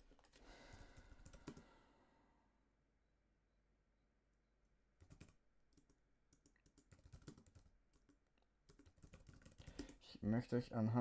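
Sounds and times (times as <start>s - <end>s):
typing on computer keyboard: 0.0s - 1.7s, 5.0s - 10.0s.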